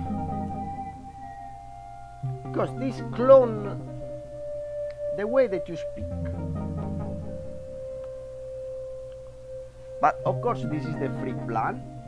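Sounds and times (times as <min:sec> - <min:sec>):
low hum: 0:00.0 - 0:12.0
steady pure tone: 0:00.0 - 0:12.0.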